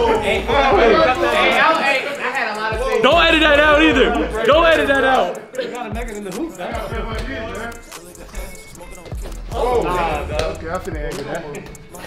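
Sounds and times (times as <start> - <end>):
men talking and calling out: 0.0 - 12.0.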